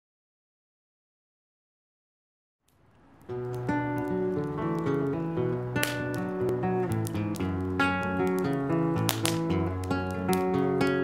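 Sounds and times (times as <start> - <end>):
acoustic guitar plucked melody: 3.3 - 11.0.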